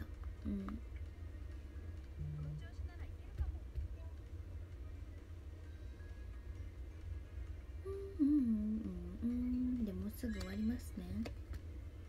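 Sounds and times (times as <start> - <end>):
woman humming: 0.0 - 0.8, 2.2 - 2.6, 7.8 - 10.0.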